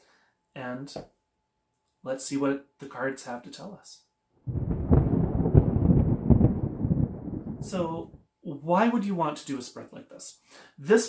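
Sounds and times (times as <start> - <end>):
deep thunder-like rumble: 4.5 - 8.2.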